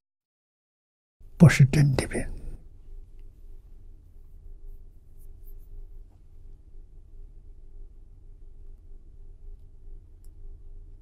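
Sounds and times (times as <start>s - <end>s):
low room hum: 1.2s - 11.0s
faint soft rustles: 2.8s - 6.6s.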